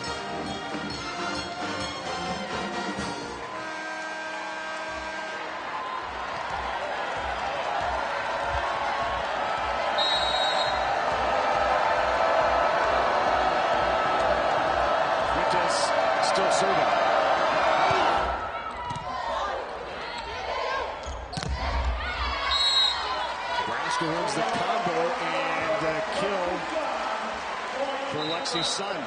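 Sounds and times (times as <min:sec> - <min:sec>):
arena music over loudspeakers: 0:00.0 - 0:18.3
arena crowd noise: 0:00.0 - 0:29.0
short high whistle: 0:10.0 - 0:10.8.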